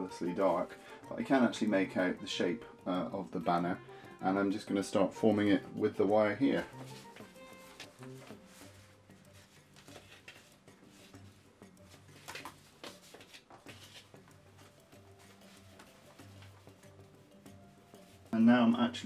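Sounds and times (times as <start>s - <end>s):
soft background music: 0.0s - 19.0s
paper and fabric rustling: 6.4s - 18.8s.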